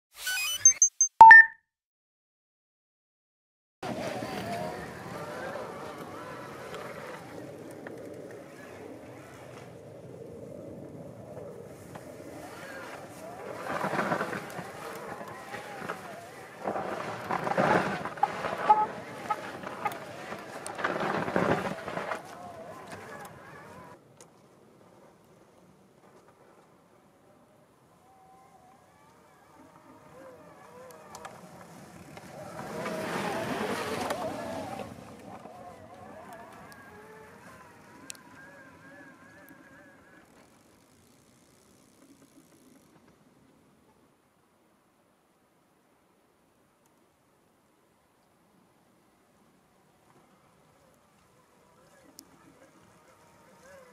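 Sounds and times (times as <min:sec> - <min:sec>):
bike tyres churning through snow: 0:03.9 - 0:24.0, 0:28.0 - 0:42.8.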